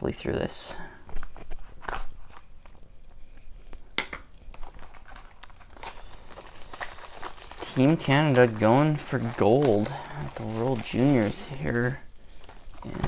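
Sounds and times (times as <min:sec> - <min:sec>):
plastic shrink wrap crinkling: 0:01.0 - 0:13.0.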